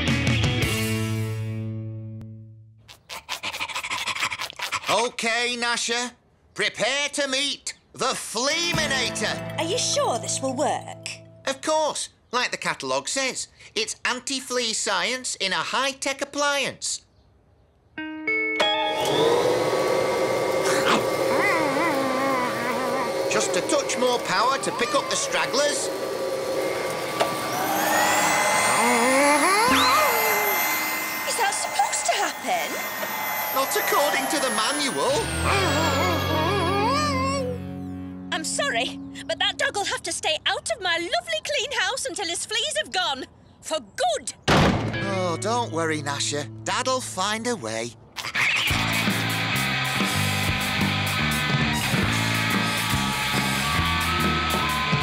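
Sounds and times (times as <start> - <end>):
cartoon dog panting: 2.8 - 5.1, 35.5 - 37.5
steady high tone: 18.0 - 40.1
rushing whine climbing in pitch: 18.6 - 38.2, 48.7 - 55.0
wavering cry: 20.7 - 23.7, 27.5 - 33.4, 35.1 - 37.8.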